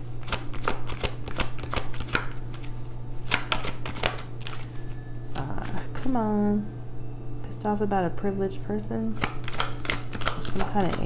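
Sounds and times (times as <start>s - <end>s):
steady low hum: 0.0s - 11.0s
cards being shuffled: 0.2s - 6.2s, 9.1s - 11.0s.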